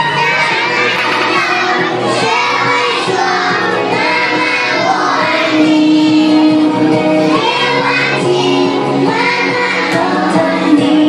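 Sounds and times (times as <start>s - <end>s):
children singing a song: 0.0s - 11.0s.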